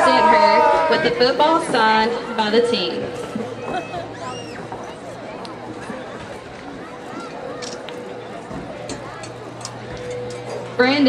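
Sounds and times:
announcer over public address: 0.0s - 3.2s, 10.1s - 11.0s
crowd chatter: 0.0s - 11.0s.

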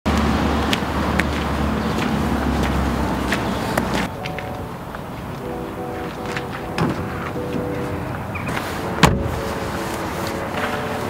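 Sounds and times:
road traffic rumble: 0.1s - 11.0s.

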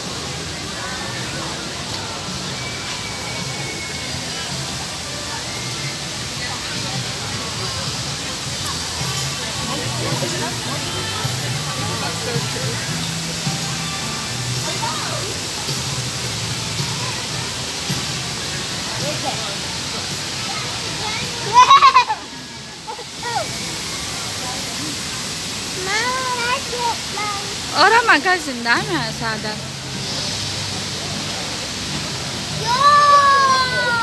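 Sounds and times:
faint crowd voices: 0.0s - 34.0s
fountain spray hissing: 0.0s - 34.0s.

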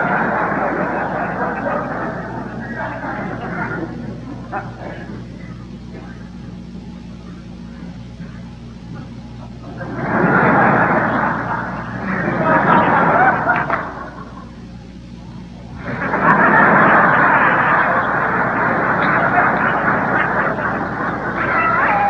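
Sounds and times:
audience laughing: 0.0s - 22.0s
low electrical hum: 0.0s - 22.0s.

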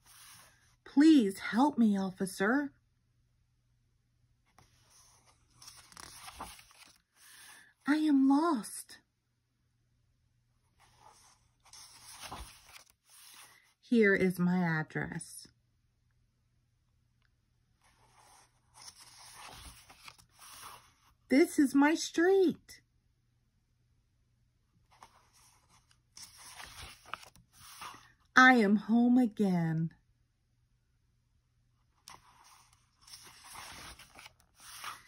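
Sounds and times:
paper page rustling: 4.6s - 7.6s, 10.8s - 13.6s, 17.8s - 21.2s, 24.9s - 28.2s, 32.0s - 35.0s.

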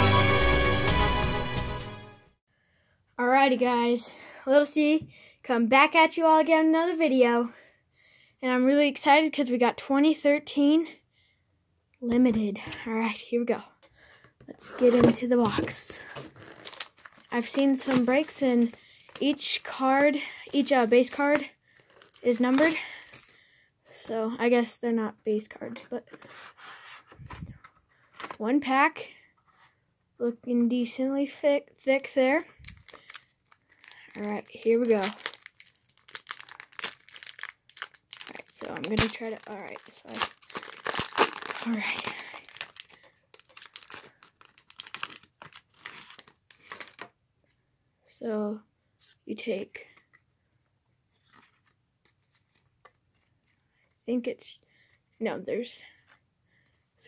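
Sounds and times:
hands rustling cardboard and foil: 14.6s - 23.4s, 31.9s - 47.1s.

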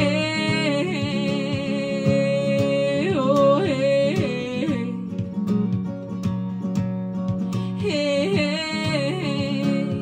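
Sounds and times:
woman singing wordless vocal flips: 0.0s - 5.6s, 7.5s - 10.0s
strummed acoustic guitar: 0.0s - 10.0s.

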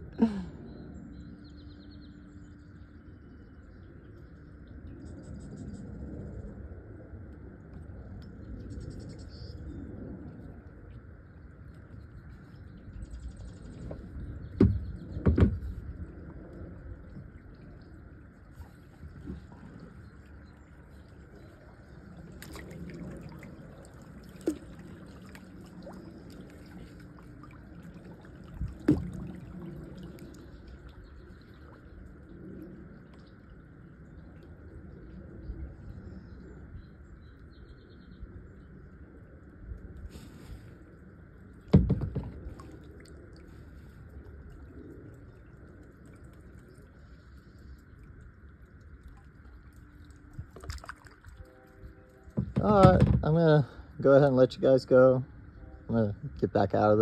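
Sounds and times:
water lapping and trickling: 0.0s - 57.0s
sharp knocks on kayak: 13.9s - 15.8s, 41.7s - 42.5s, 52.4s - 53.3s.

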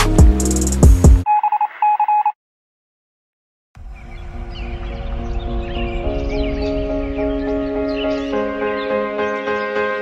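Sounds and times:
music with drums: 0.0s - 1.2s
telephone-style electronic beeping: 1.2s - 2.4s.

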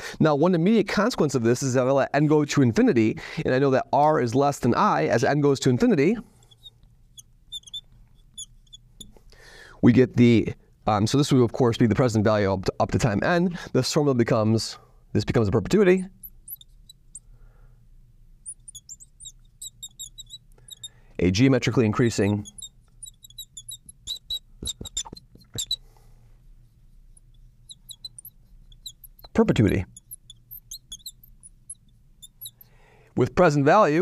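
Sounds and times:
marker squeaking on glass: 6.2s - 9.3s, 15.9s - 17.3s, 18.4s - 26.0s, 26.6s - 32.8s.

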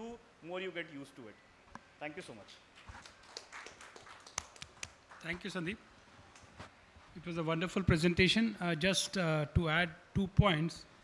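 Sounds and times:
sparse handclaps: 2.8s - 5.4s.

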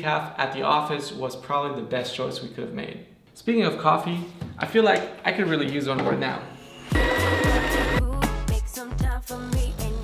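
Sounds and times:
pop music with steady beat: 6.9s - 10.0s.

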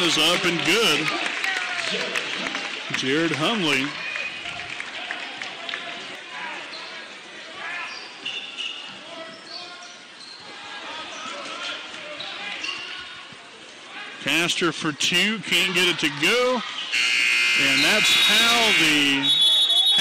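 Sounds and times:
crowd chatter: 0.0s - 20.0s
sneakers squeaking on court: 7.9s - 10.5s.

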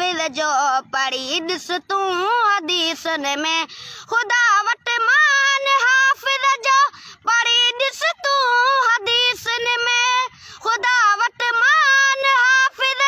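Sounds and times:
boy singing unaccompanied: 0.0s - 13.0s.

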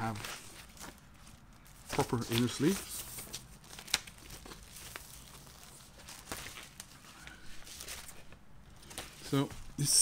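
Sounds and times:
record sleeve rustling and crinkling: 0.0s - 10.0s.

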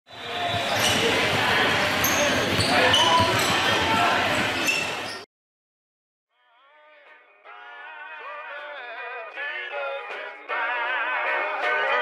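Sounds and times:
balls bouncing on hardwood court: 0.4s - 5.0s.

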